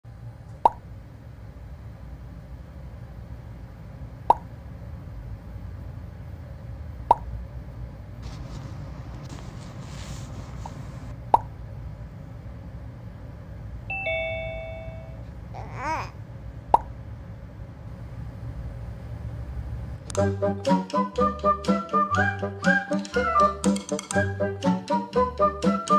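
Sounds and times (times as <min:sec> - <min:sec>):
low steady rumble: 0:00.1 - 0:22.6
two-note chime: 0:13.9 - 0:15.2.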